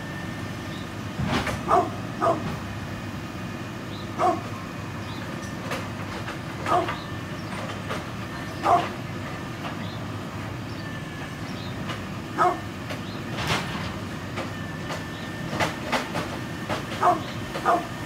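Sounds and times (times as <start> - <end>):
dog barking deep woofs: 1.6 - 2.6, 4.2 - 4.6, 6.6 - 7.0, 8.6 - 9.0, 12.3 - 12.7, 17.0 - 18.0.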